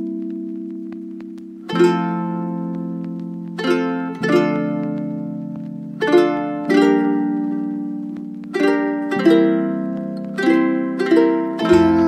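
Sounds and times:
plucked string chords: 0.0s - 12.0s.

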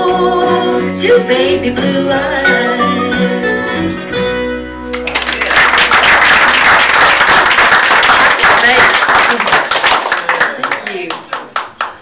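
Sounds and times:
audience applause: 4.9s - 12.0s.

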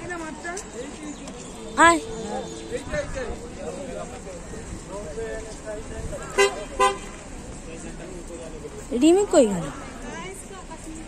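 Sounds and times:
vehicle horn toots: 1.6s - 3.2s, 6.4s - 7.2s.

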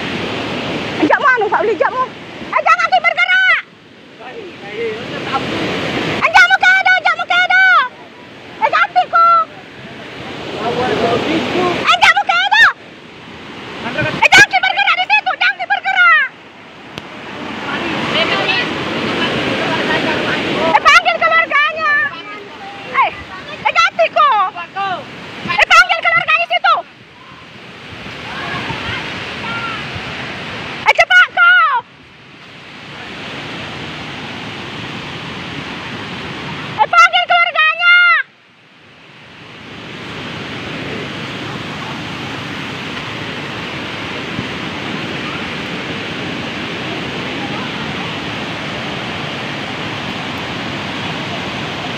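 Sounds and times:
floodwater rushing: 0.0s - 51.9s.

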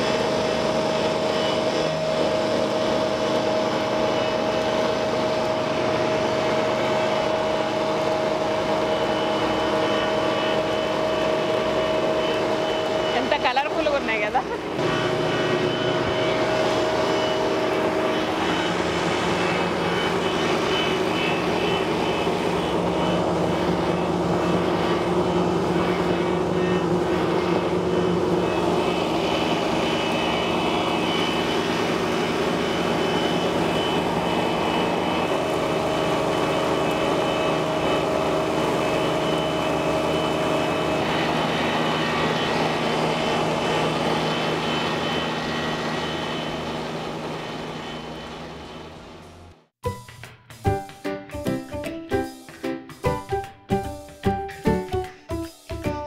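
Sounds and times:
flour mill motor drone: 0.0s - 49.7s
grinding whir: 0.0s - 49.7s.

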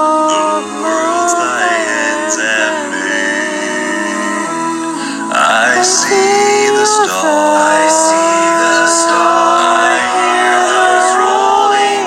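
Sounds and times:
karaoke backing track: 0.0s - 12.0s
woman singing a hymn: 0.0s - 12.0s.

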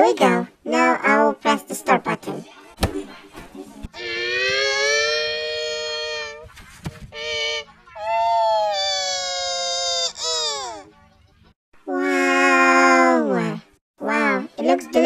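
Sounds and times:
pitch-shifted voice-like tones: 3.8s - 6.6s.

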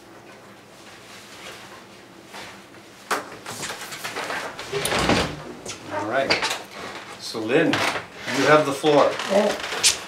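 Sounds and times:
man talking: 5.9s - 6.4s.

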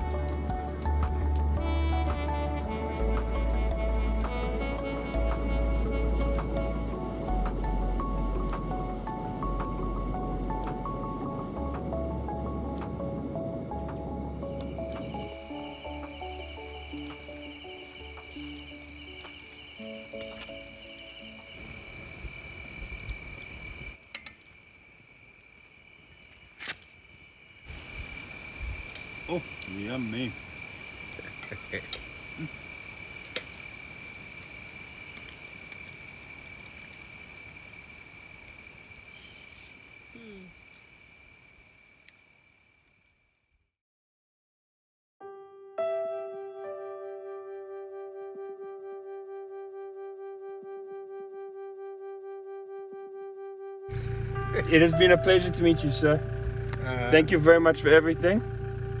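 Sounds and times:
music: 0.0s - 22.0s, 45.2s - 59.0s
crickets trilling: 0.0s - 43.6s, 53.9s - 59.0s.

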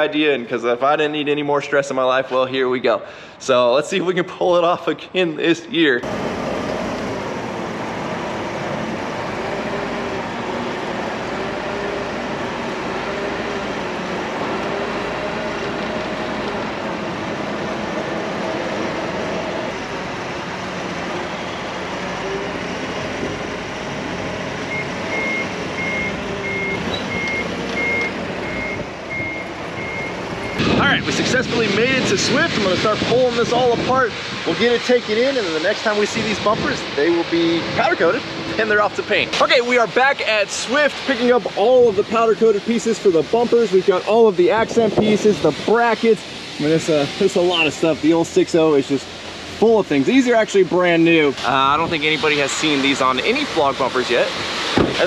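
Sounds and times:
forklift engine running: 6.0s - 34.6s
reversing alarm beeps: 24.7s - 30.6s.

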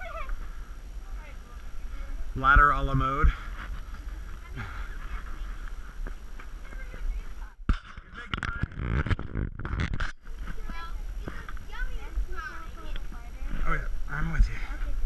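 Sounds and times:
faint voices: 0.0s - 9.0s
microphone handling noise: 2.9s - 15.0s.

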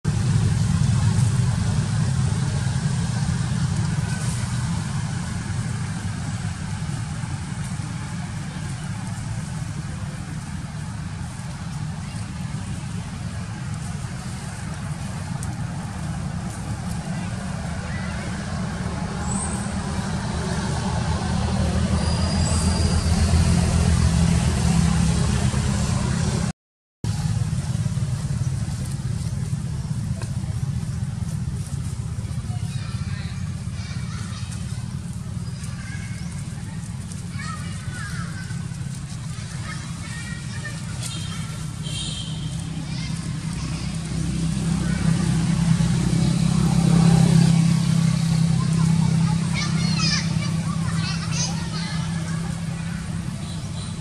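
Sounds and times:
steady low rumble: 0.0s - 22.0s
faint distant voices: 0.2s - 26.5s, 27.1s - 54.0s.

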